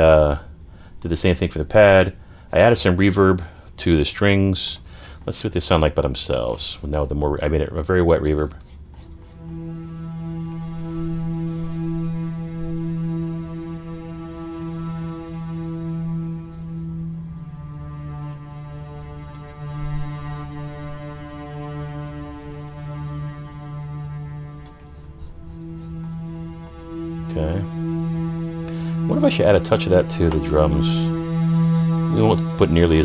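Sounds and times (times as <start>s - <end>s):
strings holding low note with reverb: 9.4s - 33.0s.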